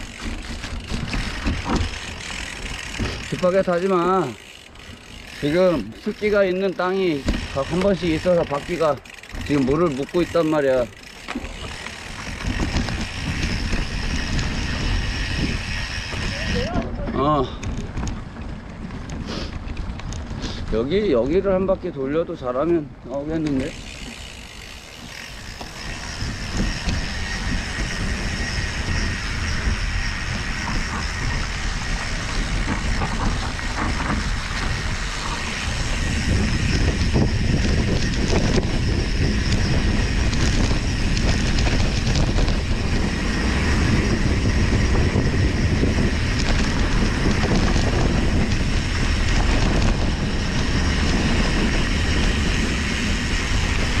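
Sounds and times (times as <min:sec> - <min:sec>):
bike rattling and knocking: 0:00.0 - 0:54.0
bike tyres rolling on dirt: 0:00.0 - 0:54.0
wind buffeting microphone: 0:00.0 - 0:54.0.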